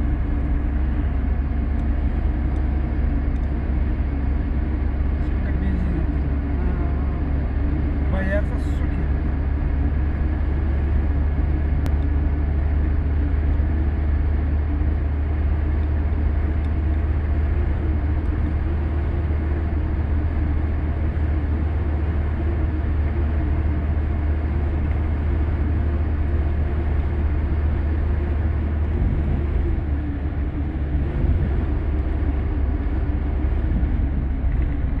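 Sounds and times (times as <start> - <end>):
road noise: 0.0 - 35.0
truck engines droning: 0.0 - 35.0.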